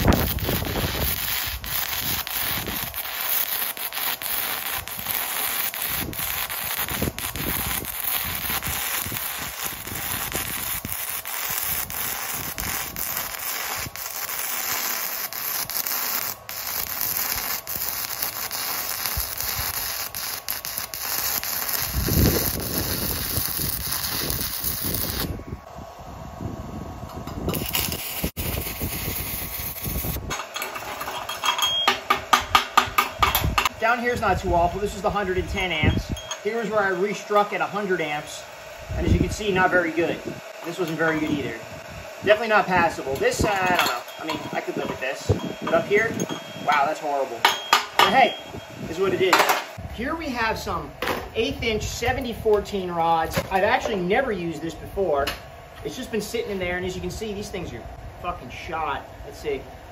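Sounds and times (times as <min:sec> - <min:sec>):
welding arc crackling: 0:00.0 - 0:25.5, 0:27.1 - 0:54.7
chipping hammer on metal: 0:47.4 - 0:48.4.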